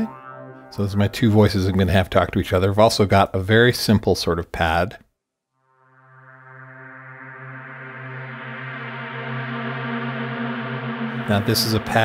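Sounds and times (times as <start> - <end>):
synthesizer pad chord with reverb: 0.0 - 1.8, 5.6 - 12.0.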